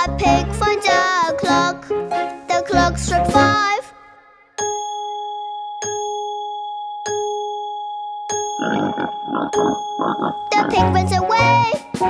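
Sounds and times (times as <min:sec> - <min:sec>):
clock chime dings: 0:04.6 - 0:11.6.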